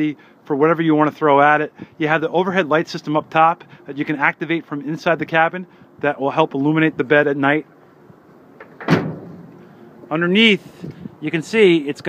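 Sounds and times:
truck tailgate slamming shut: 8.6s - 9.5s.

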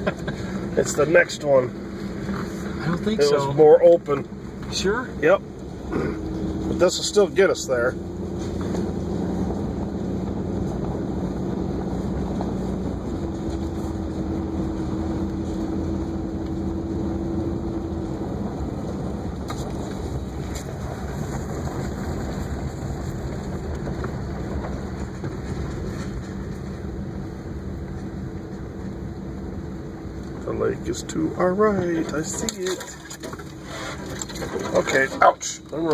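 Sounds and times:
vehicle engine and tyre drone: 0.0s - 35.9s.

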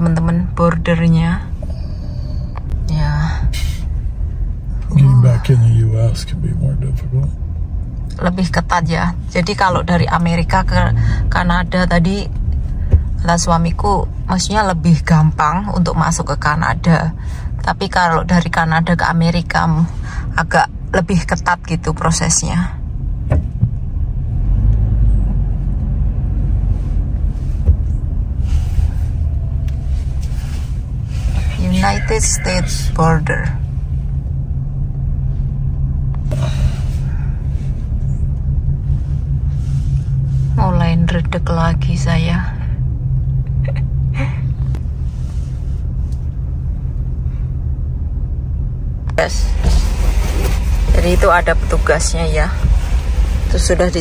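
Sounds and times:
car cabin rumble: 0.0s - 54.0s.

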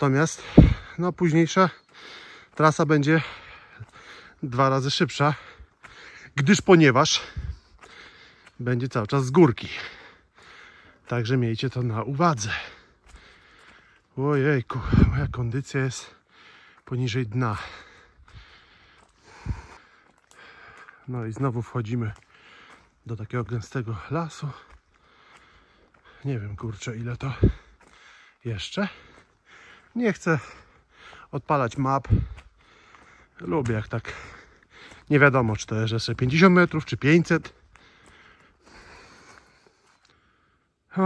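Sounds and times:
heavy breathing: 0.2s - 1.0s, 1.8s - 4.5s, 5.3s - 6.4s, 7.1s - 8.6s, 9.6s - 11.1s, 12.4s - 15.3s, 16.0s - 16.9s, 17.5s - 21.1s, 22.1s - 23.0s, 24.5s - 26.6s, 27.2s - 31.4s, 32.1s - 35.1s, 37.5s - 40.9s
low thump: 0.5s - 0.8s.

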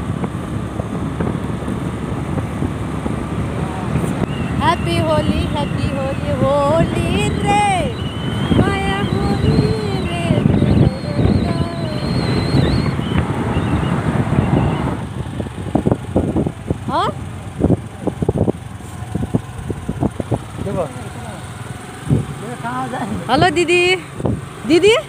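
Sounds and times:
wind buffeting microphone: 0.0s - 21.0s, 21.9s - 22.5s, 23.2s - 25.0s
motorbike engine running: 0.0s - 25.0s
voices: 3.4s - 15.1s, 16.7s - 25.0s.

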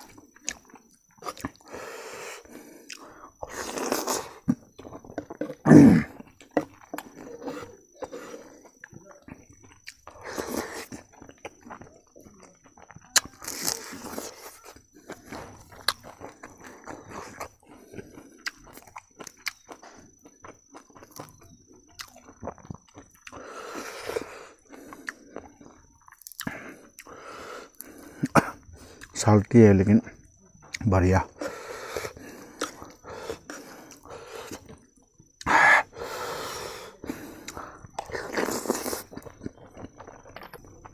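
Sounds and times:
wet chewing and lip smacking: 0.0s - 29.2s, 30.2s - 40.9s
crunching dried fish: 37.1s - 40.9s.

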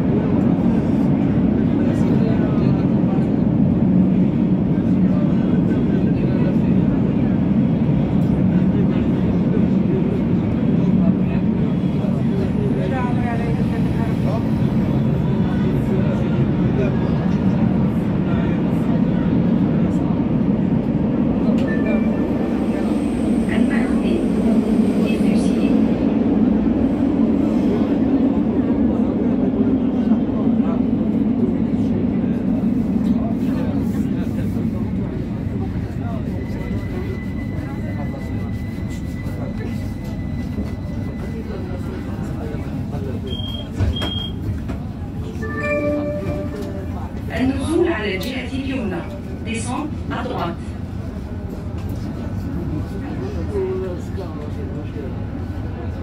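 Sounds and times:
train car rumble: 0.0s - 56.0s
short high beeps: 43.3s - 44.4s, 45.4s - 46.9s.

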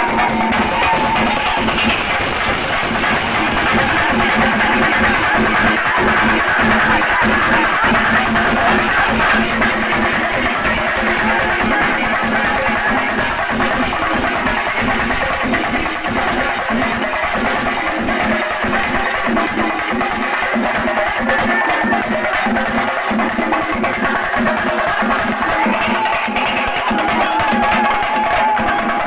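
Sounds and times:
drums playing loud dense beat: 0.0s - 29.0s.

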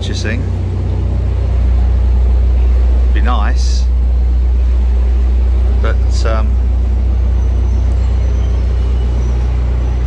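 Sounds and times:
diesel boat engine throbbing: 0.0s - 10.0s.

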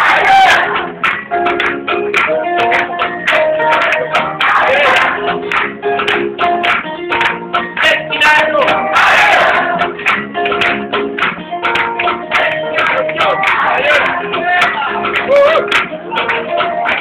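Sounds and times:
strummed acoustic guitar: 0.0s - 17.0s.

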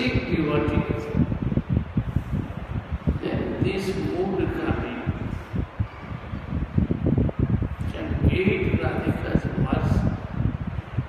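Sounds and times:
air buffeting microphone: 0.0s - 11.0s.

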